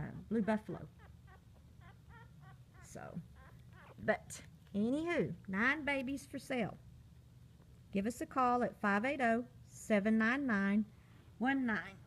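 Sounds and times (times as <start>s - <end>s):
puppies squeaking: 0.3s - 4.2s.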